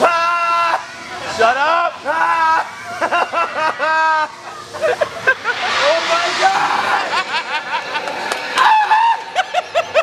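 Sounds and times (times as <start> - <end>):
indistinct voices: 1.0 - 10.0
people giggling and laughing: 2.8 - 5.8, 7.1 - 8.3, 9.2 - 10.0.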